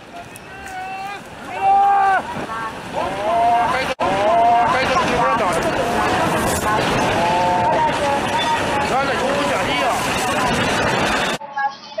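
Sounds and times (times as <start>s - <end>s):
roar of water surge: 1.1s - 10.9s.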